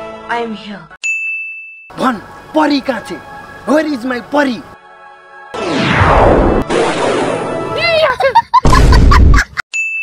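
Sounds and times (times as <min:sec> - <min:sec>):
high ding: 0:01.0 - 0:02.0, 0:09.7 - 0:10.0
film music: 0:01.9 - 0:08.4.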